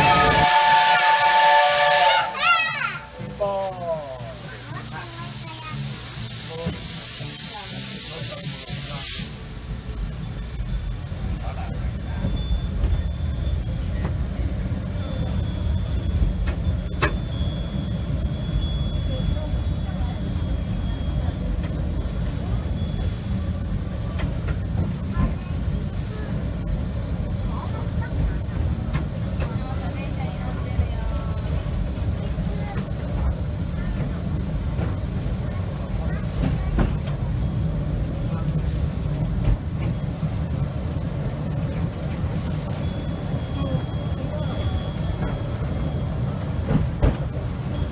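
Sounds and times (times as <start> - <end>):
train low rumble: 0.0 - 47.9
faint voices: 2.2 - 16.6, 18.5 - 47.9.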